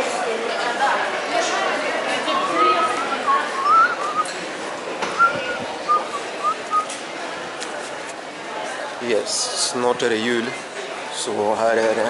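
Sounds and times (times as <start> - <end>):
indoor mall hum: 0.0 - 12.0
person whistling a tune: 2.4 - 4.3, 5.2 - 6.9.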